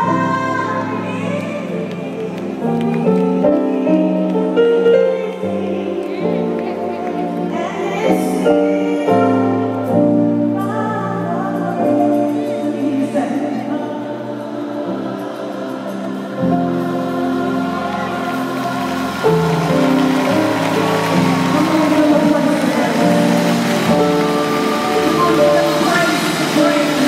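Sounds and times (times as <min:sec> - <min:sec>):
gospel keyboard chords: 0:00.0 - 0:27.0.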